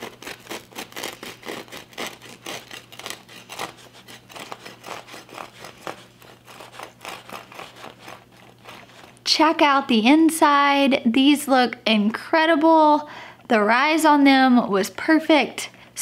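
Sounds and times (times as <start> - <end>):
serrated knife sawing bread: 0.0 - 9.5.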